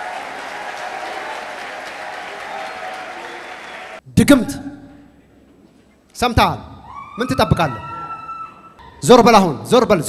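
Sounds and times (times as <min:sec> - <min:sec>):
crowd applauding: 0:00.0 - 0:04.0.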